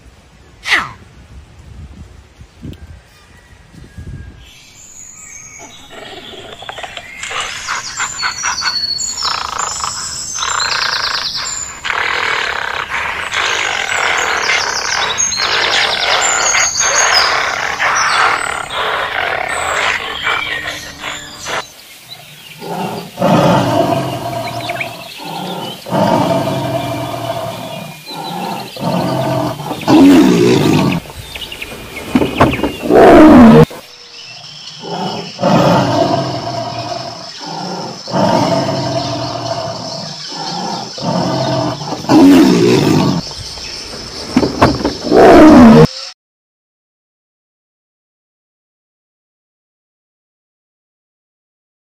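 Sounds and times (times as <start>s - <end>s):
tiger growling and roaring: 5.7s - 45.9s
dense animal calling: 5.8s - 21.7s, 22.6s - 33.8s, 34.8s - 45.9s.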